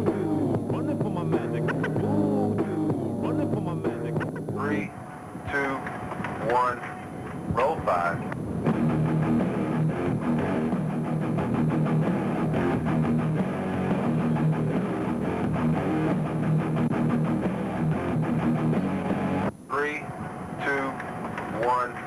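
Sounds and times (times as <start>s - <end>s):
rock music with electric guitar: 0.0s - 4.9s, 8.4s - 19.5s.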